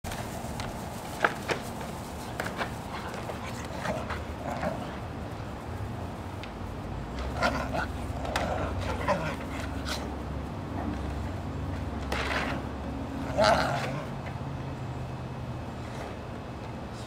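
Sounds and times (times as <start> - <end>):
dogs scuffling: 0.1 - 12.8.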